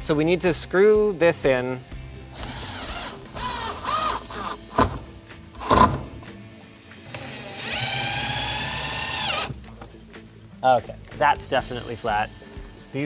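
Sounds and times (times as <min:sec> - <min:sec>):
cordless drill whining: 0:02.3 - 0:06.1, 0:07.1 - 0:09.6.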